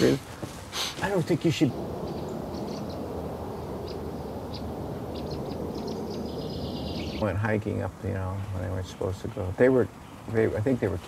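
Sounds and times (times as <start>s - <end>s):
low hum: 1.5s - 7.2s.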